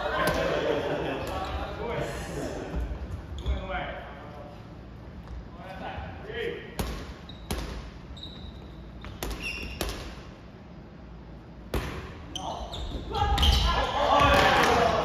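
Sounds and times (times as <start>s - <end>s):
volleyball smacks in gym: 11.7s - 12.2s.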